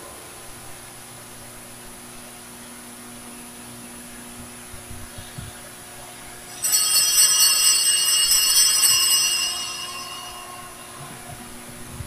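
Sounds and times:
altar bells ringing: 0:06.5 - 0:12.0.

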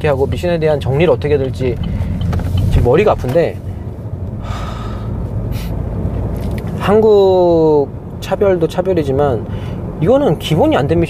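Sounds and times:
car cabin rumble: 0:00.0 - 0:07.1
man sighing heavily: 0:04.4 - 0:05.7
short breath: 0:04.4 - 0:05.8.

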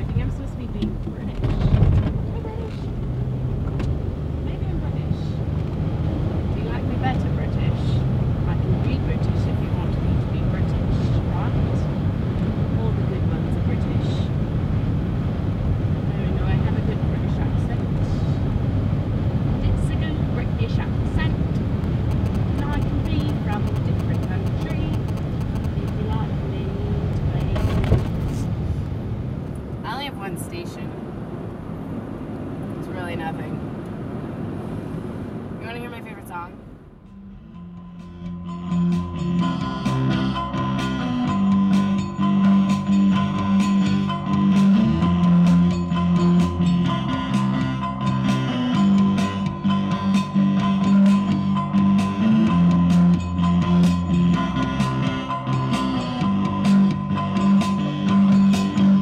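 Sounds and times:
car engine and road noise: 0:00.0 - 0:59.0.

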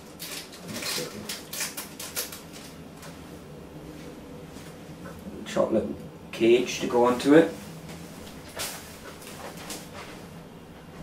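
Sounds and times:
plastic wrapping crinkling: 0:00.0 - 0:02.8.

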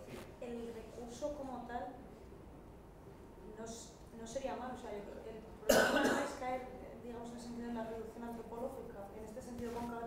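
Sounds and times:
faint talk in a room: 0:00.0 - 0:10.0
loud cough: 0:05.7 - 0:06.4.

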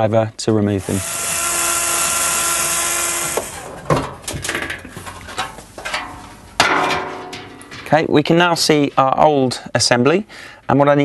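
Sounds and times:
cordless drill running: 0:00.8 - 0:03.7
clicks and knocks of handling: 0:03.9 - 0:08.0.

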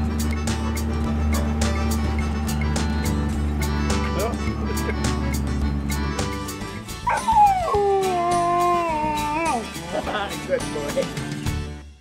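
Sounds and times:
utility vehicle engine rumble: 0:00.0 - 0:11.4
background music with steady beat: 0:00.0 - 0:12.0
dog howling: 0:07.1 - 0:09.7.

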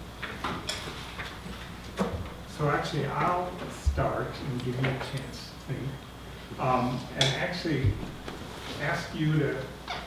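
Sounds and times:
man speaking: 0:02.5 - 0:06.0, 0:06.6 - 0:08.0, 0:08.8 - 0:09.8.

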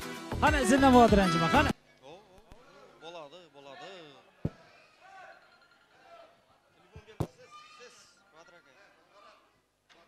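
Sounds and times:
faint voices in large hall: 0:01.6 - 0:10.0.

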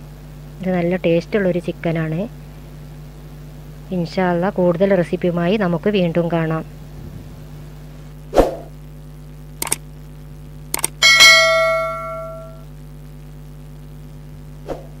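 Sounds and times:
steady low hum: 0:00.0 - 0:15.0
mouse clicks: 0:10.8 - 0:11.0
bright bell ding: 0:11.0 - 0:12.6.

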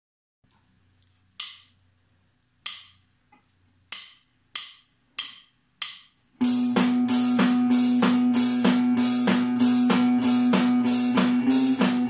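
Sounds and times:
drumstick clicks: 0:01.4 - 0:01.8, 0:02.6 - 0:03.0, 0:03.9 - 0:06.2.

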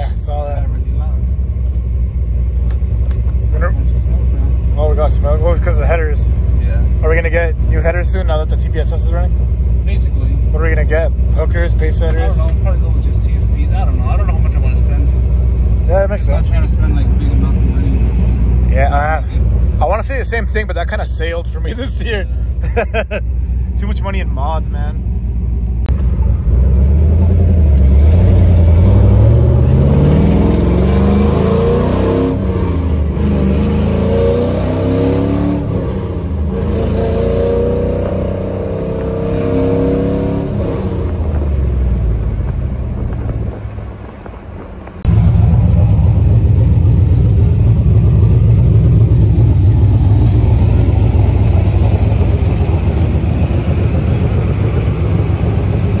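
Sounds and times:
car engine accelerating: 0:00.0 - 0:56.0
car engine low rumble: 0:00.0 - 0:56.0.

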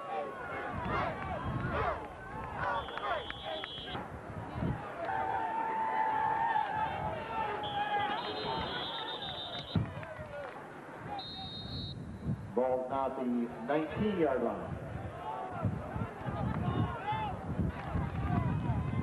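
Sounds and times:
voices of players and spectators: 0:00.0 - 0:19.0
high whistle blasts: 0:02.6 - 0:04.0, 0:07.6 - 0:09.8, 0:11.1 - 0:12.2.

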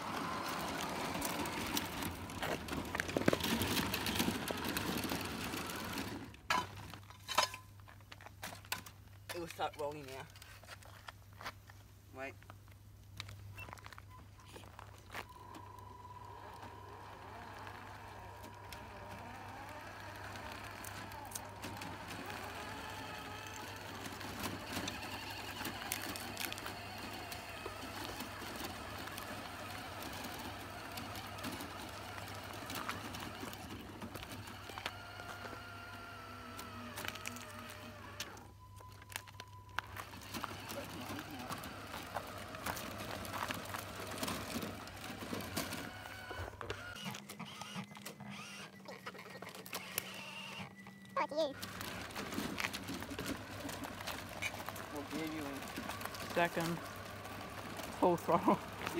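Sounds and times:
whir of small electric motors: 0:00.0 - 0:06.4, 0:15.2 - 0:58.9.

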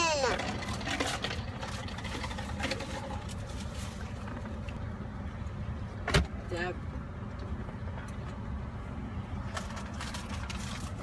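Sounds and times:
child's voice sliding down: 0:00.0 - 0:00.4.

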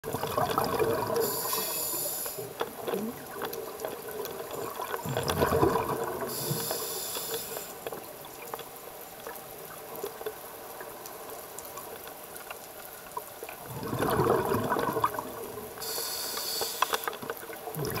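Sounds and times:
gurgling exhaust bubbles: 0:00.0 - 0:01.4, 0:04.4 - 0:06.4, 0:13.6 - 0:15.7, 0:17.7 - 0:18.0
regulator air hiss: 0:01.2 - 0:02.5, 0:06.3 - 0:07.8, 0:15.8 - 0:17.2.

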